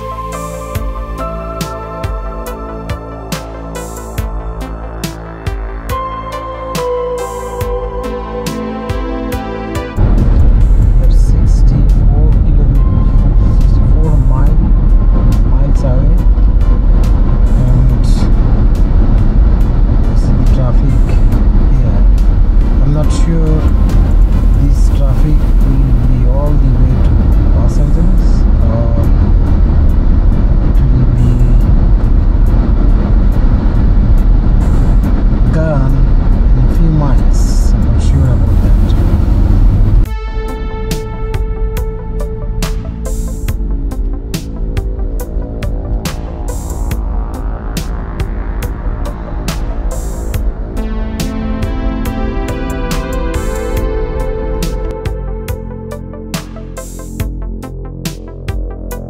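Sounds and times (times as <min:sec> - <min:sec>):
car road and wind rumble: 0:00.0 - 0:59.0.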